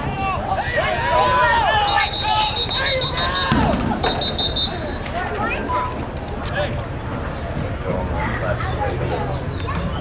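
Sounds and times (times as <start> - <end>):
spectators' voices: 0.0 - 10.0
referee's whistle blasts: 1.8 - 5.0.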